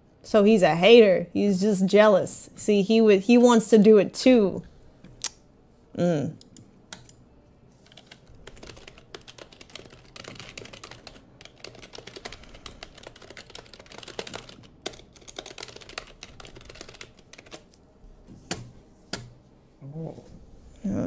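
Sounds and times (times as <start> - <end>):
computer keyboard typing: 7.8 - 17.8.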